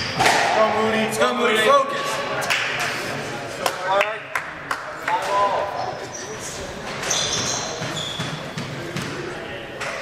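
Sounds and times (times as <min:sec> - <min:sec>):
spectators talking: 0:00.0 - 0:10.0
shoe squeak: 0:05.7 - 0:08.9.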